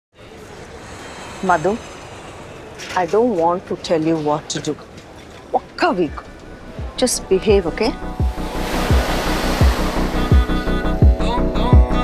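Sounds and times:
background music with bass beat: 6.8s - 12.0s
ocean surf washing in: 8.0s - 11.2s.

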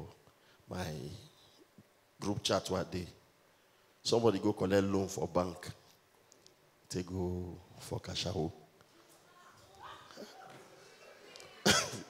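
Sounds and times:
loud cough: 11.6s - 12.0s.

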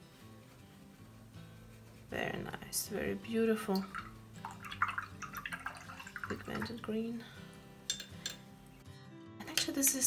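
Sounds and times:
brush rinsed in water jar: 1.2s - 7.2s.

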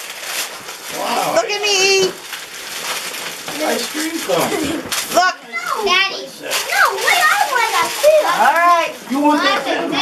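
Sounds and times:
young children talking and calling: 3.5s - 10.0s.

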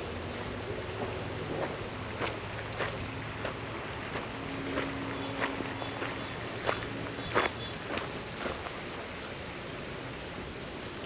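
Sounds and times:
faint steady hum: 0.0s - 11.0s
footsteps on gravel: 1.0s - 8.8s.

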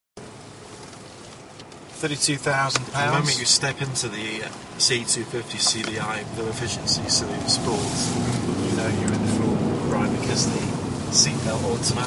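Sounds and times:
in-cabin car driving noise: 0.2s - 12.0s.

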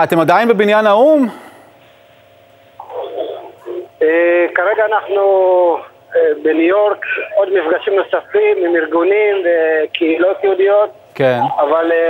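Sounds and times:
telephone line hiss: 2.8s - 10.2s
distorted voice over phone: 2.8s - 10.6s, 11.3s - 12.0s
clear speech over phone: 2.8s - 12.0s.

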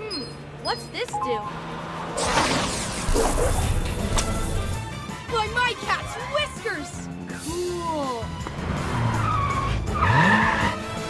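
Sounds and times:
cartoon background music: 3.1s - 11.0s.

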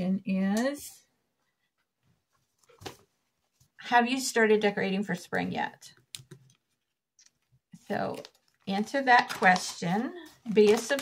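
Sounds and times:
woman speaking: 0.0s - 1.1s, 3.8s - 6.0s, 7.8s - 11.0s.

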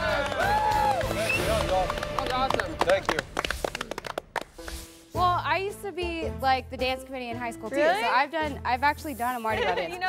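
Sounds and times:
people clapping: 0.0s - 4.9s.

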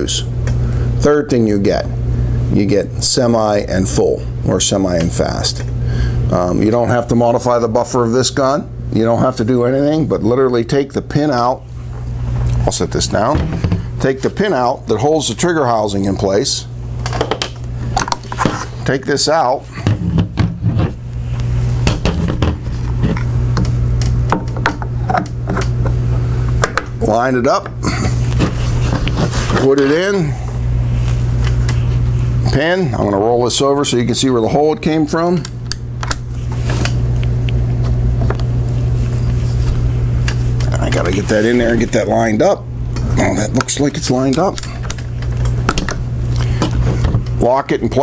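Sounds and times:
loud steady low hum: 0.0s - 48.0s.

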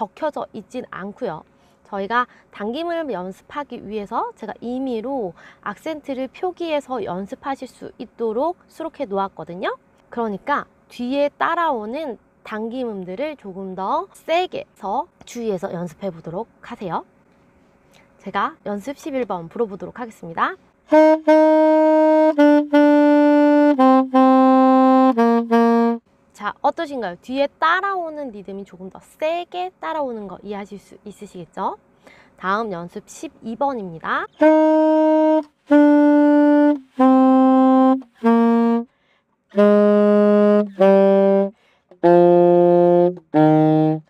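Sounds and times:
solo saxophone: 20.9s - 26.0s, 34.3s - 38.9s, 39.5s - 44.0s.

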